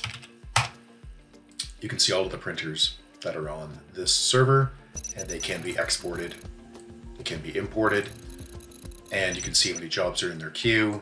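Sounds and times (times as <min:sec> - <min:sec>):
keyboard and mouse clicks: 0:05.0 - 0:06.5, 0:07.9 - 0:09.8.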